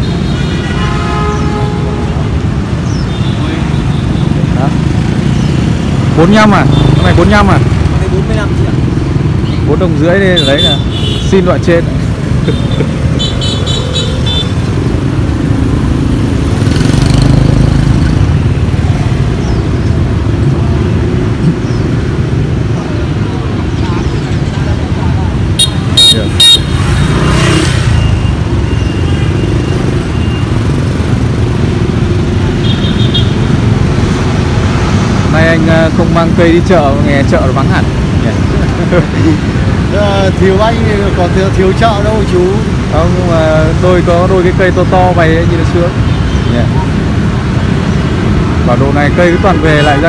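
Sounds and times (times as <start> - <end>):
motorcycles passing: 0.0 - 50.0.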